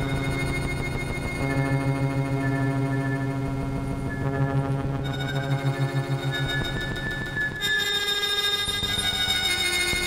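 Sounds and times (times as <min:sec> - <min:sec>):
synthesizer drone: 0:00.0 - 0:10.0.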